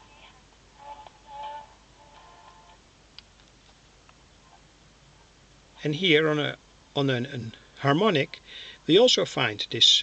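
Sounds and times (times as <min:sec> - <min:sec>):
faint radio music: 0:00.0 - 0:10.0.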